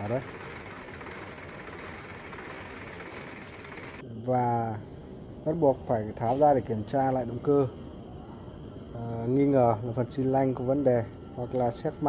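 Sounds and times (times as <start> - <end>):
engine running: 0.0 - 4.0.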